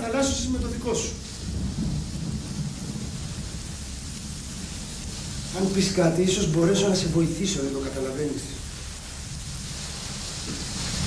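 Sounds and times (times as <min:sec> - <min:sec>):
low rumble of thunder: 0:00.0 - 0:11.0
steady rain: 0:00.0 - 0:11.0.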